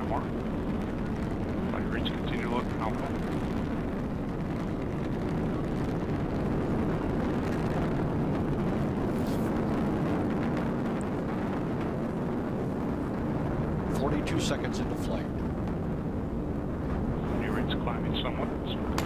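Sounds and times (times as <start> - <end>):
rocket engine rumble: 0.0 - 19.0.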